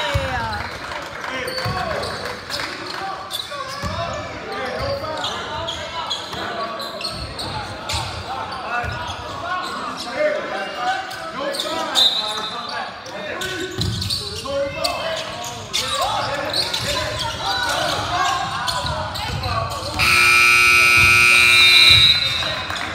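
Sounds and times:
scoreboard horn blare: 20.0s - 22.8s
players and crowd shouting: 20.0s - 22.9s.

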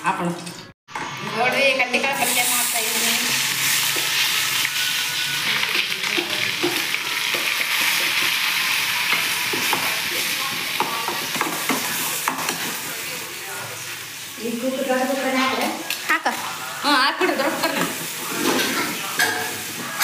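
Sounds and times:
onions sizzling in hot oil: 0.9s - 20.0s.

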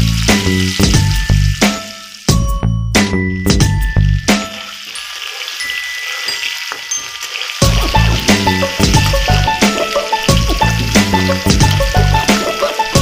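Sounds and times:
background music with steady beat: 0.0s - 4.7s, 6.7s - 13.0s
fish frying in oil: 0.0s - 13.0s.

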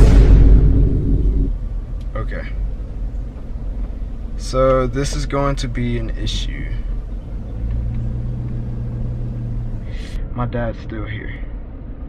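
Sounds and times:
loud impact boom: 0.0s - 2.0s
low rumble: 0.0s - 10.6s.

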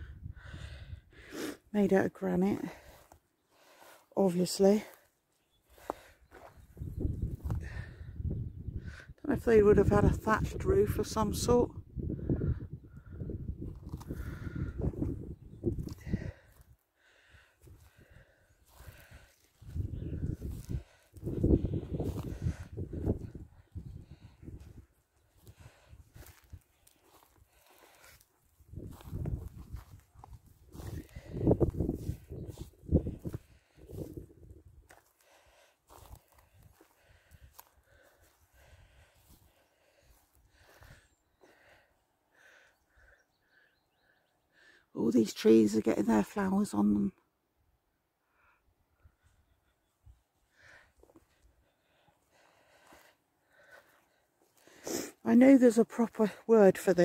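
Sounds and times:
wind gusting on microphone: 0.0s - 1.2s, 6.5s - 16.5s, 17.6s - 26.7s, 28.6s - 34.8s
footsteps on grass: 2.6s - 6.8s, 17.6s - 23.6s, 24.6s - 41.6s, 52.2s - 55.5s.

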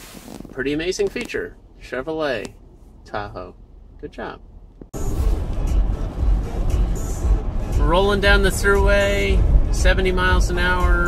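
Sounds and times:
low engine and road rumble: 0.0s - 11.0s.

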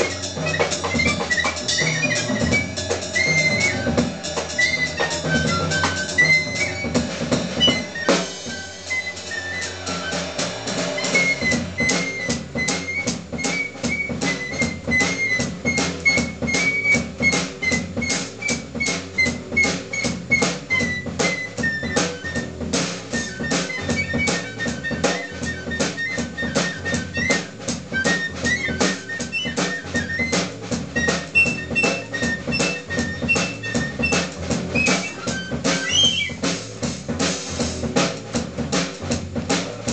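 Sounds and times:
double bass walking: 0.0s - 8.6s, 11.2s - 39.9s
piccolo melody: 0.0s - 36.6s
drum kit and cymbals: 0.0s - 39.9s.

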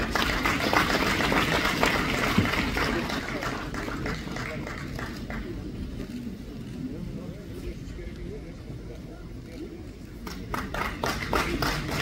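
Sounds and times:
audience applauding: 0.0s - 5.6s, 10.3s - 12.0s.

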